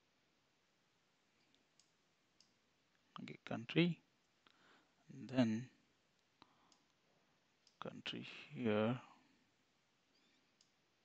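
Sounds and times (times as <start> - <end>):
computer mouse clicks: 1.4 - 2.6, 6.2 - 7.0, 7.6 - 7.8, 10.1 - 10.8.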